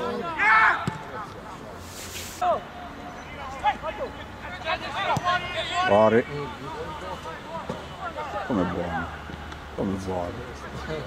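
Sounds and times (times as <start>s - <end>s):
voices shouting: 0.0s - 1.2s, 2.4s - 9.8s.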